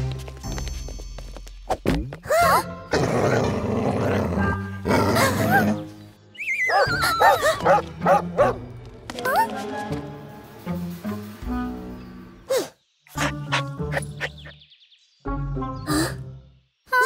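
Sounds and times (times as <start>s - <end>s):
background music: 0.0s - 17.0s
cartoon dog growling and barking: 2.9s - 5.7s
wavering falling cries: 6.4s - 7.6s.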